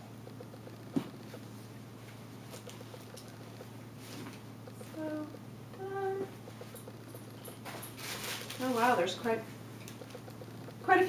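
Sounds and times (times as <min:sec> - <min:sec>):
foil wrapping crinkling: 0:07.6 - 0:09.2.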